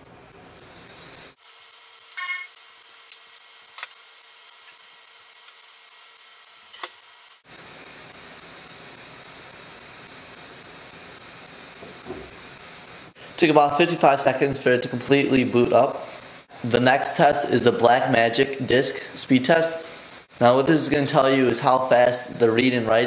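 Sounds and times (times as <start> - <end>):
room hiss: 0.0 - 23.0.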